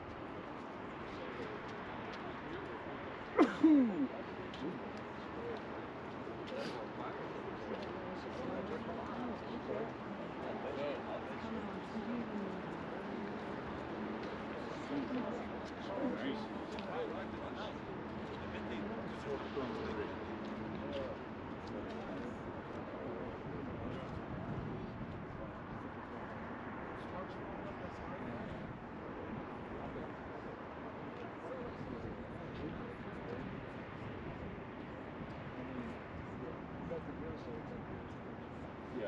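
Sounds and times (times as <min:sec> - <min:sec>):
people chattering: 0:00.0 - 0:39.0.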